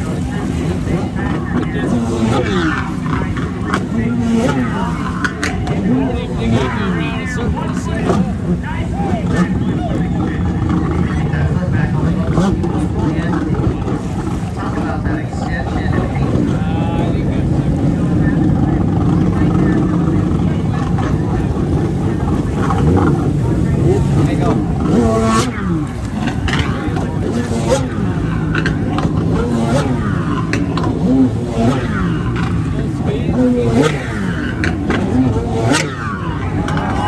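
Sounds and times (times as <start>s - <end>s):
jet ski engine revving: 0.0s - 37.0s
spectators chattering: 0.0s - 37.0s.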